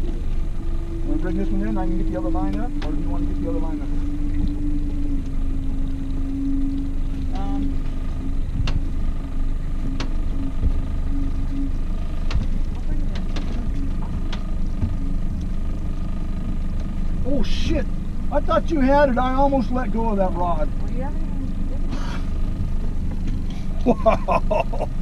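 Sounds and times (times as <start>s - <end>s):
outboard motor running: 0.0s - 25.0s.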